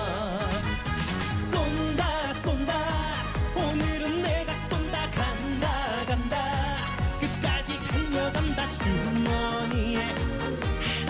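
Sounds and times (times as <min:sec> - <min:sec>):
man singing into microphone: 0:00.0 - 0:00.7, 0:01.3 - 0:11.0
dance backing track: 0:00.0 - 0:11.0.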